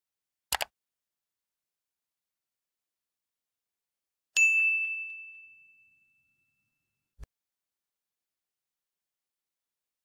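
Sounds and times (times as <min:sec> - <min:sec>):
notification bell ding: 0:04.4 - 0:06.7.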